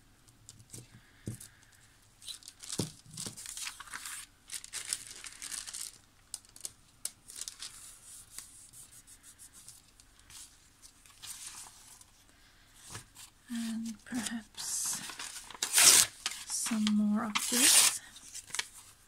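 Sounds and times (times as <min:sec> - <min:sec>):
paper rustling: 0:02.2 - 0:12.2, 0:12.8 - 0:19.0
paper tearing by hand: 0:14.6 - 0:18.6.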